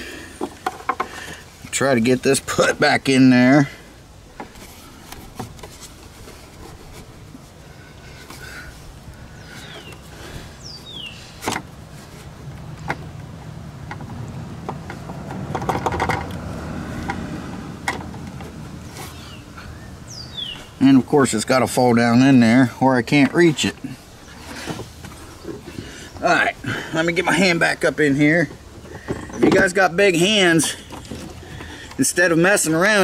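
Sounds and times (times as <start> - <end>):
low background noise: 0.0 - 33.0
falling bird chirps: 9.3 - 11.4, 18.8 - 20.8.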